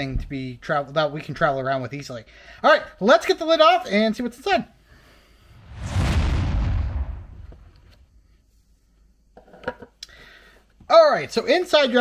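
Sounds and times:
rush of noise: 5.6s - 8.0s
deep low rumble: 5.6s - 8.2s.

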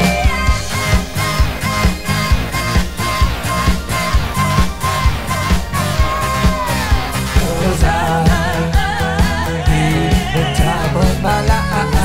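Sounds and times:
woman singing: 0.0s - 2.8s, 3.6s - 12.0s
pop dance music: 0.0s - 12.0s.

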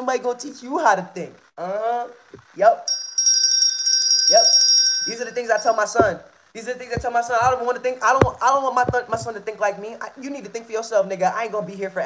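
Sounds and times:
hand bell ringing: 2.9s - 6.0s.

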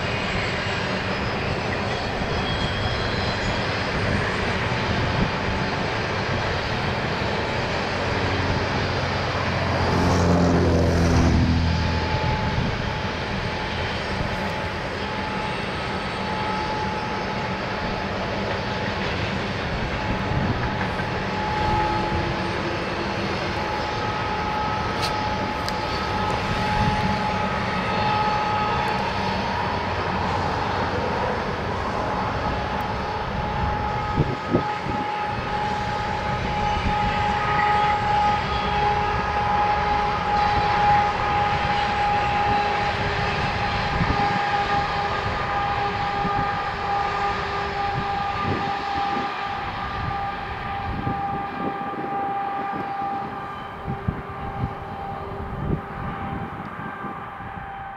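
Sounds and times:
distant train wheels rumbling: 0.0s - 57.9s
train whine: 0.0s - 57.9s.

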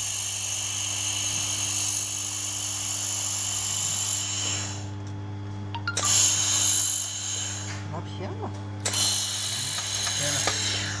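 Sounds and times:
low machine hum: 0.6s - 11.0s.

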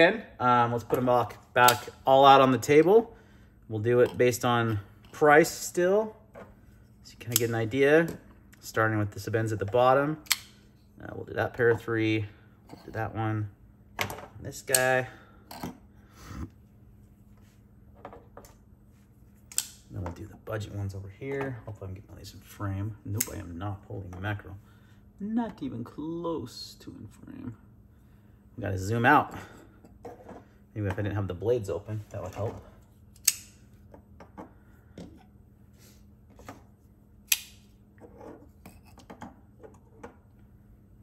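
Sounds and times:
folding knife click: 33.2s - 33.6s, 37.2s - 37.6s.

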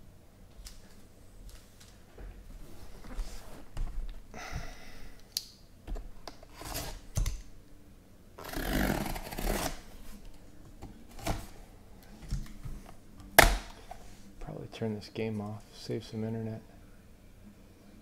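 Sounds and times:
cardboard tearing: 6.5s - 7.0s, 8.4s - 9.9s.

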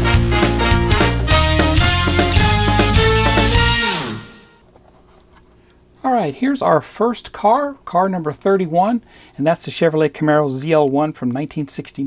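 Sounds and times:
swing background music: 0.0s - 4.6s
faint steady hum: 4.6s - 12.0s.

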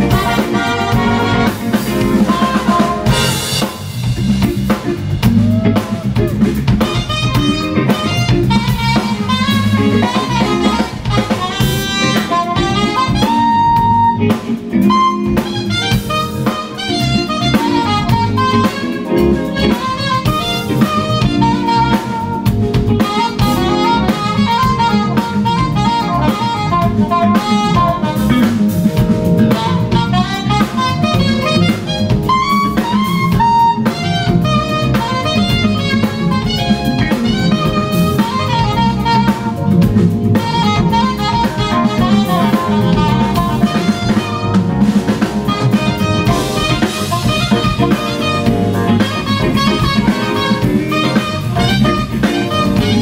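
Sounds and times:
trumpet playing: 0.0s - 4.2s, 6.8s - 53.0s
alto saxophone melody: 0.0s - 4.5s, 5.3s - 53.0s
jazz band backing: 0.0s - 53.0s.

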